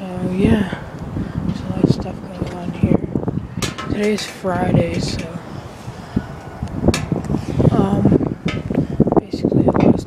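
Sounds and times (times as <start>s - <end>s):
indistinct voices talking: 0.0s - 10.0s
sharp knocks: 8.4s - 8.7s.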